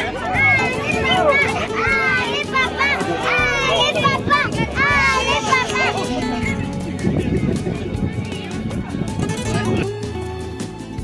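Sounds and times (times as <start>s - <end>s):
voices calling out: 0.0s - 9.0s
background music with bass line: 0.0s - 11.0s.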